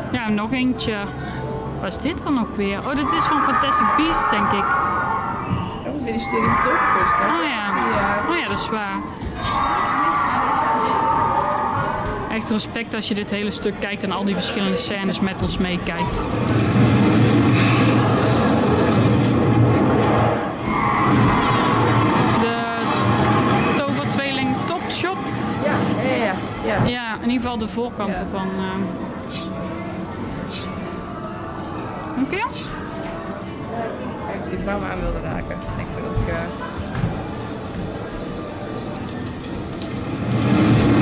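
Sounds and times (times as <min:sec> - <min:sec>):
music: 0:27.1 - 0:41.0
vehicle: 0:39.2 - 0:41.0.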